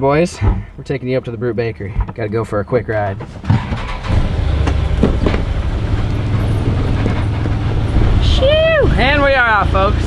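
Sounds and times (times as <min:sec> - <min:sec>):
engine rumbling: 0:00.0 - 0:10.0
short knocks: 0:04.6 - 0:05.8.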